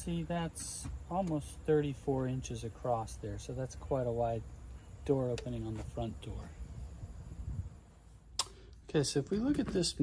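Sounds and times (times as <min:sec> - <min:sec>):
sharp click: 0:08.4 - 0:08.6.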